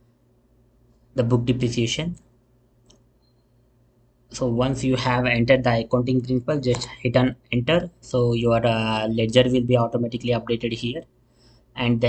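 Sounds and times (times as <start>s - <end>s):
person speaking: 1.2s - 2.3s, 4.3s - 11.0s, 11.8s - 12.0s
faint computer mouse click: 2.1s - 3.4s.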